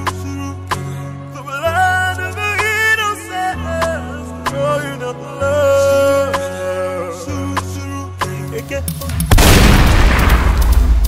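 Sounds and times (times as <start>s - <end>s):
background music: 0.0s - 11.0s
shotgun blast: 9.2s - 11.0s.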